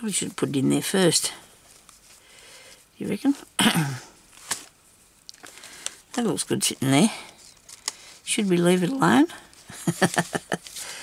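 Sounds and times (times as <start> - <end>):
paper and fabric rustling: 4.3 - 11.0.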